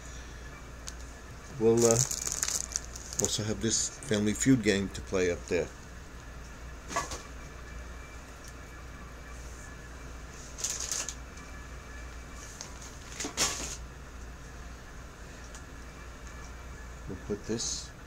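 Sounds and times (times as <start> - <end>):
steady low hum: 0.0 - 18.0
bag rustling: 1.8 - 3.4.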